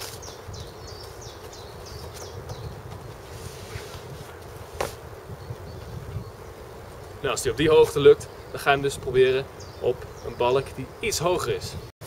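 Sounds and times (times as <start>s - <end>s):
small bird chirping: 0.0s - 2.8s.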